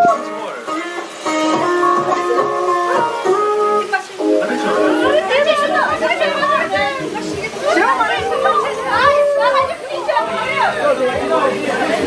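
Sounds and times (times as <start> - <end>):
plucked guitar music: 0.0 - 12.0
voices talking: 0.0 - 12.0.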